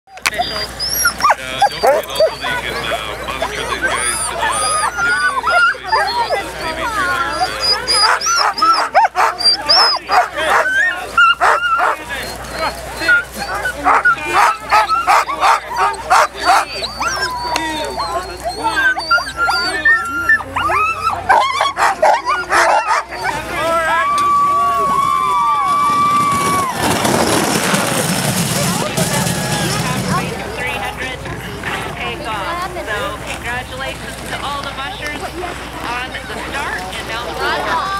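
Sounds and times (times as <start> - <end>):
sled dogs barking and yipping: 0.1 - 30.3.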